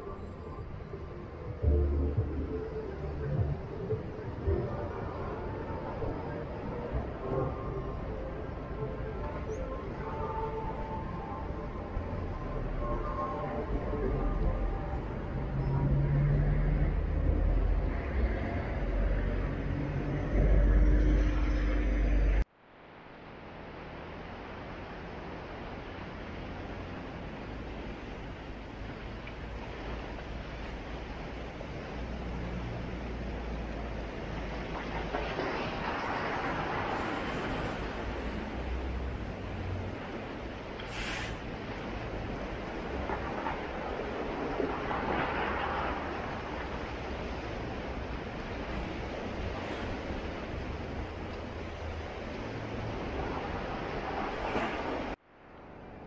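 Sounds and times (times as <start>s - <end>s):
low rumble: 0.3s - 22.5s
sea surf breaking on rocks: 33.0s - 55.2s.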